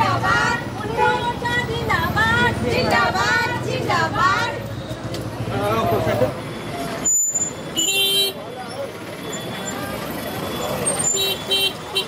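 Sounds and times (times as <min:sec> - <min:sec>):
street noise: 0:00.0 - 0:12.0
voices: 0:00.0 - 0:12.0
vehicle horn beeping: 0:07.4 - 0:08.6, 0:10.5 - 0:12.0.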